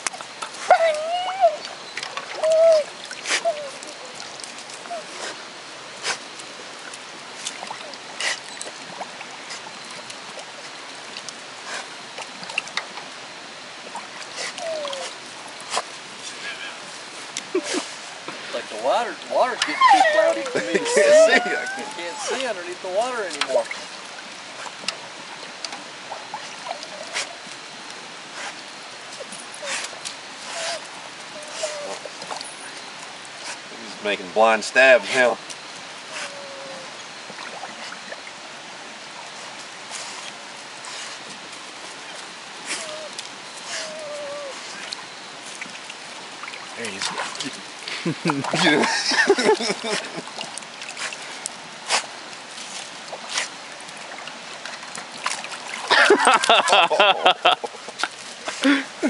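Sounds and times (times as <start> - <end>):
dog splashing in bucket of water: 0.0 - 5.4, 19.0 - 27.6, 41.2 - 58.8
dog whining: 0.6 - 5.3, 14.4 - 15.2, 19.4 - 22.5, 26.3 - 27.6, 30.5 - 32.4, 36.1 - 37.0, 42.6 - 45.0
water splashing in metal bucket: 53.0 - 58.1.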